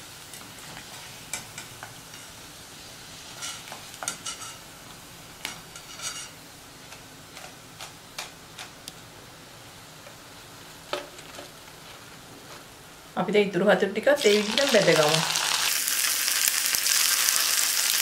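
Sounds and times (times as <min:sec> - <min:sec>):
metal spoon scraping pan: 0:05.8 - 0:06.4
food deep-frying in oil: 0:14.2 - 0:18.0.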